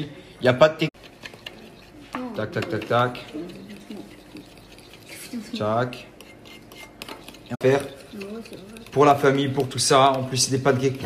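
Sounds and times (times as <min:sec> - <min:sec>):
utensil scraping ceramic bowl: 0:00.9 - 0:11.0.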